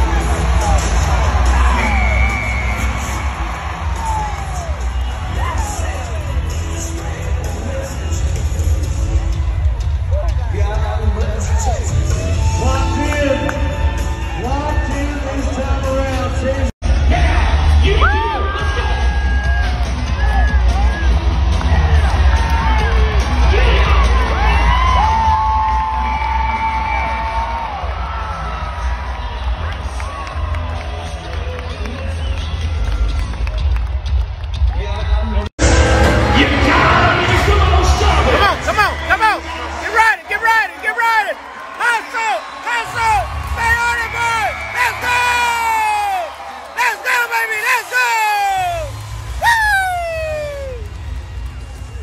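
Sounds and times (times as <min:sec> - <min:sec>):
crowd yelling and cheering: 0:00.0 - 0:52.0
loud music with heavy bass: 0:35.6 - 0:39.4
loud person's voice: 0:36.1 - 0:46.1, 0:46.8 - 0:50.8.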